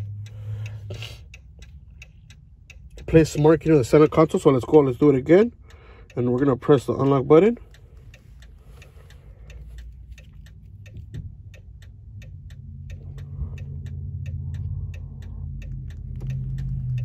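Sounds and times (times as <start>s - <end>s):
low hum: 0.0s - 17.0s
rapid clicking in car cabin: 0.0s - 17.0s.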